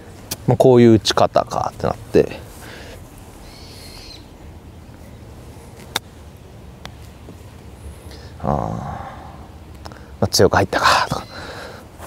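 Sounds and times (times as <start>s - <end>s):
bird whistled call: 3.4s - 4.3s.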